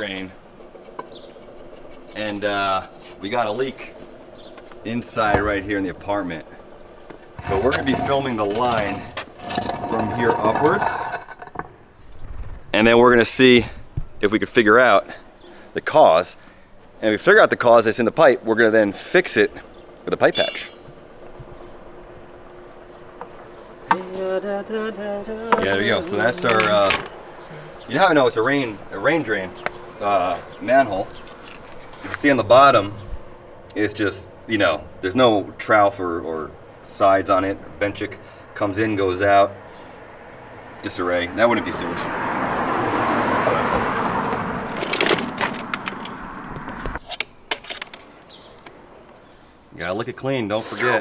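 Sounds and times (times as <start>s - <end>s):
faint steady hum: 0.0s - 40.8s
steady outdoor noise: 0.0s - 51.0s.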